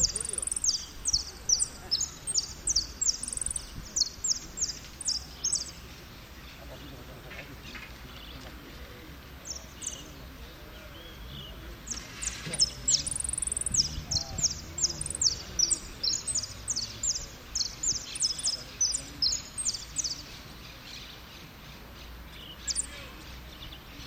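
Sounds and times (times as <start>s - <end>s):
finch singing: 0.0s - 24.0s.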